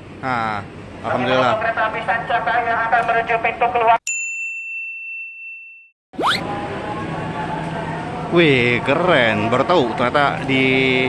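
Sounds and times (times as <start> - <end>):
bell-like ding: 4.1 - 5.9.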